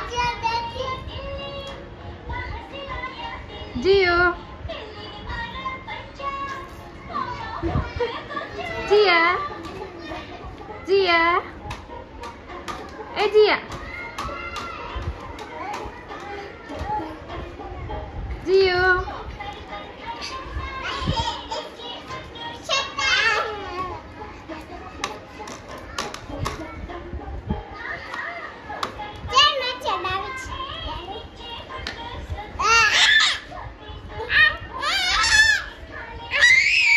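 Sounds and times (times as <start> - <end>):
children laughing and chattering: 6.2 - 36.9
toddlers babbling and squealing: 13.7 - 18.0, 19.8 - 26.8, 32.4 - 36.9.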